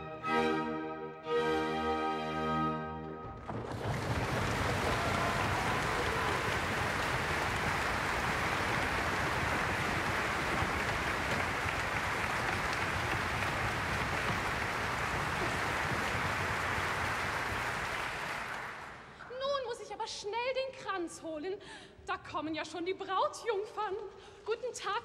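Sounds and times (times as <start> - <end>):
audience applauding: 3.4 - 19.2.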